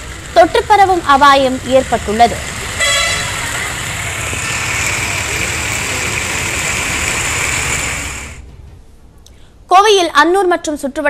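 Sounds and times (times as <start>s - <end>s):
tyre hiss on wet street: 0.0s - 8.4s
engines rumbling: 0.0s - 8.7s.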